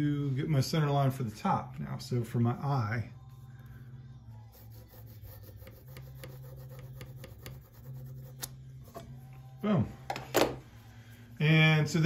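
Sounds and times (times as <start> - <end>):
steady low hum: 0.0 - 12.0
pencil scratching on wood: 4.5 - 8.6.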